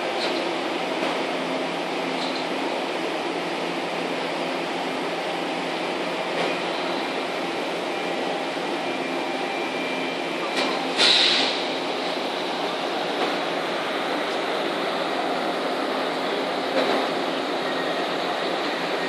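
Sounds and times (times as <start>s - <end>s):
ship engine drone: 0.0s - 19.0s
hiss-like burst: 11.0s - 11.6s.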